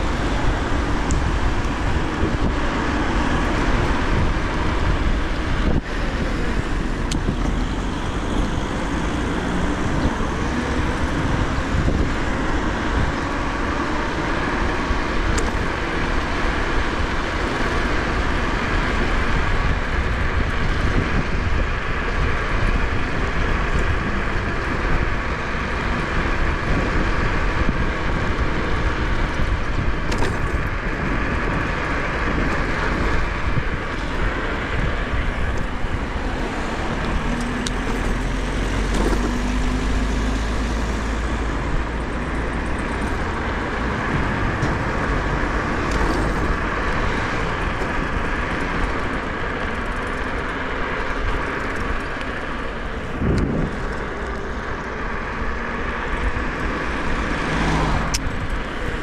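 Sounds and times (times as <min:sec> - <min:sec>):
road traffic: 0:00.0 - 0:59.0
wind rush and deep rumble: 0:00.0 - 0:59.0.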